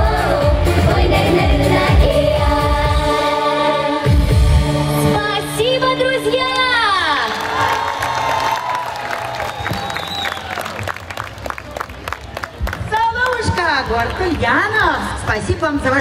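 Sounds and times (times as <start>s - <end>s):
audience applause and cheering: 7.1s - 14.4s.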